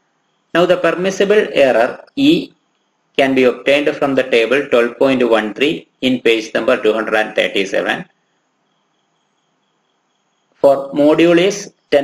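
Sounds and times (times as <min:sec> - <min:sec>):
thin high-pitched hiss: 0:06.3 - 0:12.0.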